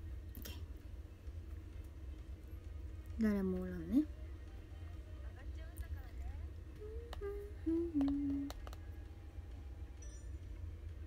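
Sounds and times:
woman humming: 0:06.8 - 0:08.6
faint clicks: 0:07.0 - 0:08.8.

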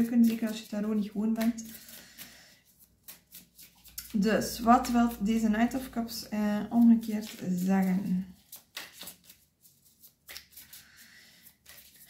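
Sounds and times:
cards rustling and sliding: 0:00.0 - 0:05.4, 0:06.0 - 0:12.0.

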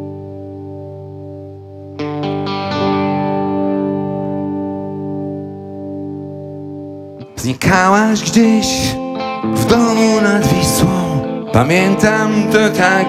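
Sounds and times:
distorted electric guitar: 0:00.0 - 0:13.0.

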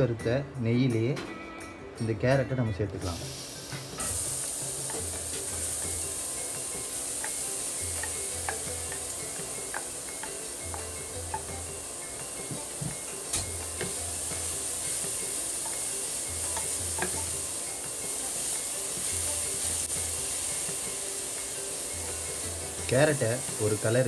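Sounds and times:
carrots sizzling in a pan: 0:03.0 - 0:24.0.

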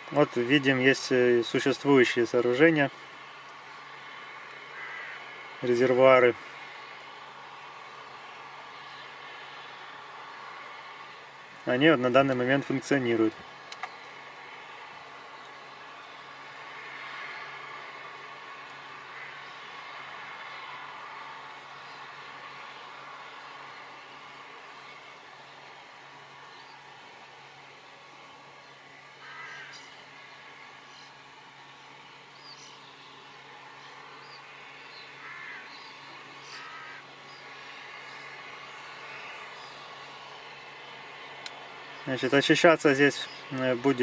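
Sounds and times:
faint background hum and hiss: 0:00.0 - 0:44.0
short bird calls: 0:04.6 - 0:05.6, 0:28.6 - 0:30.2, 0:32.2 - 0:40.4.

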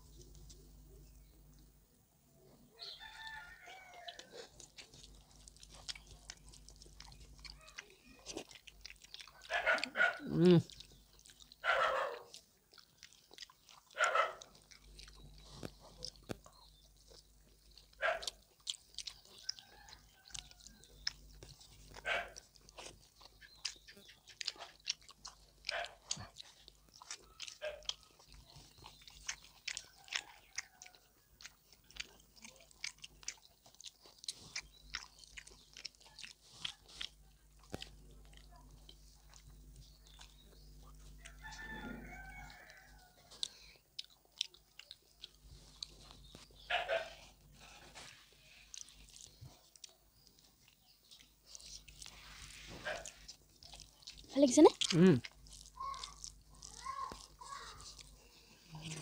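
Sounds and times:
people chewing with wet smacks: 0:00.0 - 0:01.7, 0:02.4 - 0:59.0.

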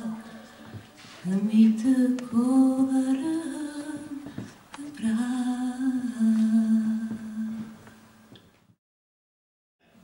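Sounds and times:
person singing unaccompanied: 0:04.8 - 0:07.7.

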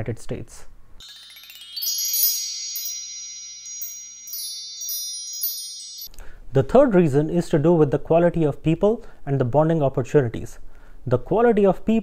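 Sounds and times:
wind chime tones: 0:01.0 - 0:06.4.

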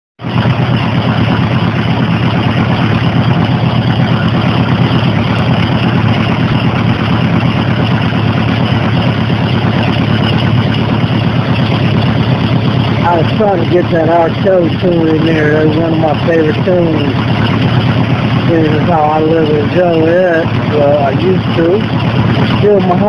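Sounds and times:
motorcycle engine idling: 0:00.2 - 0:23.0.

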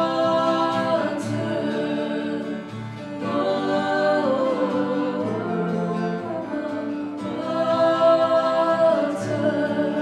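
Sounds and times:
acoustic guitar: 0:00.0 - 0:10.0
cello: 0:00.0 - 0:10.0
harmony voices: 0:00.0 - 0:10.0.

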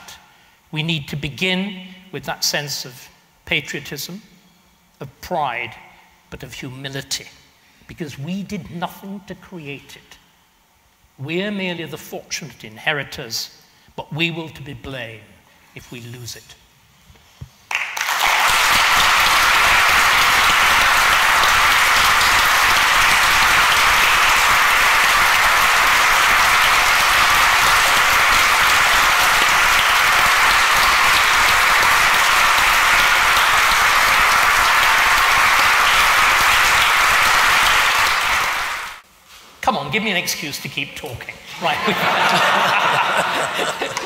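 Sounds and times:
audience applauding: 0:17.7 - 0:39.0.

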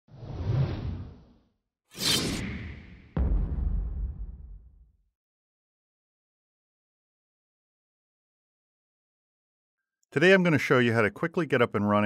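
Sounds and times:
whoosh sound effect: 0:01.9 - 0:03.0.

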